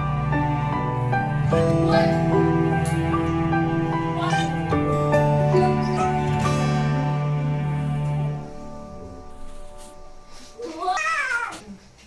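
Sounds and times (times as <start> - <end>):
soft background music: 0.0 - 12.0
cat meowing: 10.7 - 11.8.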